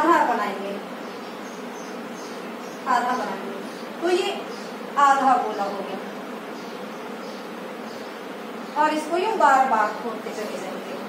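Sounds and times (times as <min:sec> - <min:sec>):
steady buzzing: 0:00.0 - 0:11.0.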